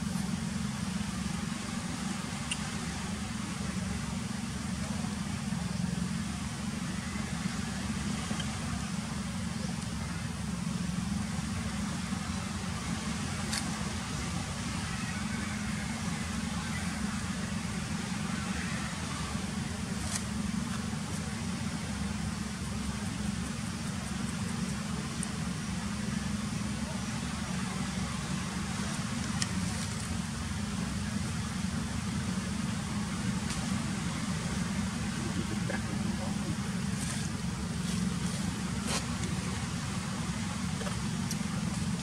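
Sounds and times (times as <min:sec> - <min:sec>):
faint clicks: 0:08.3 - 0:08.6.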